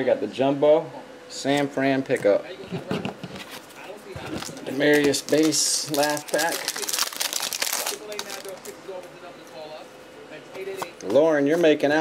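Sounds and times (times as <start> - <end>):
cards rustling: 3.4 - 8.8
foil wrapper crinkling and tearing: 4.2 - 8.8.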